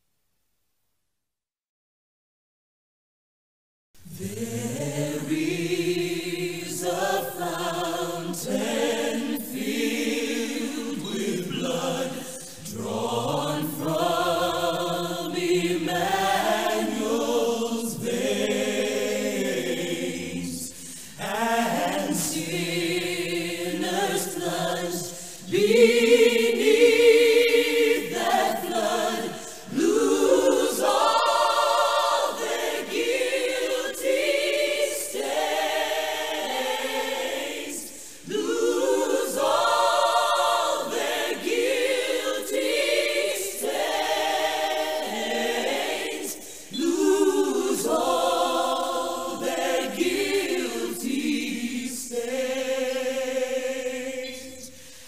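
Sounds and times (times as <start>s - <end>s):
choir singing unaccompanied: 4.0s - 54.9s.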